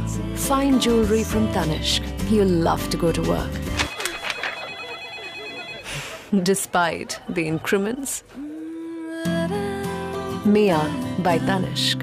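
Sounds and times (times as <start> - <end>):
electronic telephone ringtone: 3.8 - 6.2.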